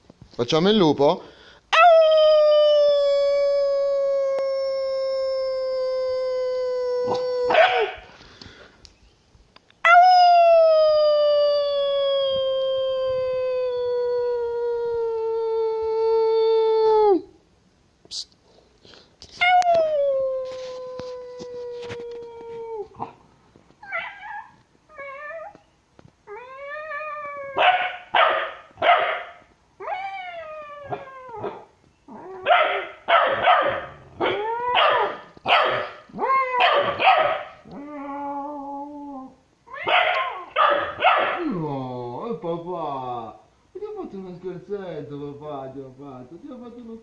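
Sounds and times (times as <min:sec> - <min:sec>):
puppy howling: 0:01.8 - 0:08.2, 0:09.8 - 0:17.4, 0:19.4 - 0:23.2, 0:23.8 - 0:25.7, 0:26.3 - 0:41.6
puppy barking and yipping: 0:07.1 - 0:08.1, 0:27.5 - 0:29.4, 0:32.4 - 0:37.6, 0:39.7 - 0:41.4.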